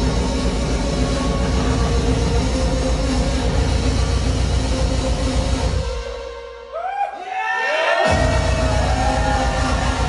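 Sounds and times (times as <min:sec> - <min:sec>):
distorted breakcore music: 0:00.0 - 0:06.2, 0:08.0 - 0:10.0.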